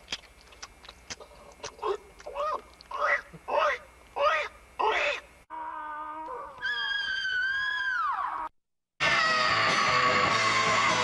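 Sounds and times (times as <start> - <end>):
squawking vocal sounds: 1.7 - 8.4
high-pitched creature wail: 5.5 - 10.5.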